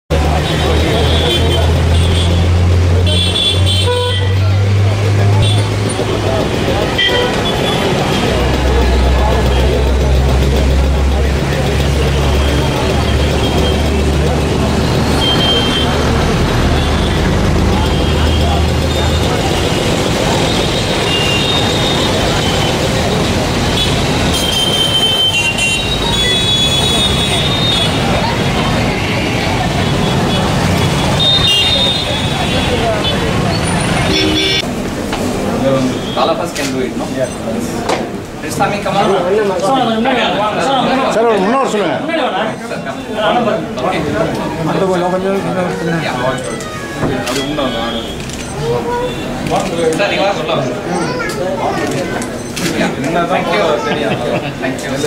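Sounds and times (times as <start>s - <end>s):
vehicle engine running: 0.1s - 24.5s
road traffic noise: 0.1s - 55.0s
short horn toots: 34.0s - 34.7s.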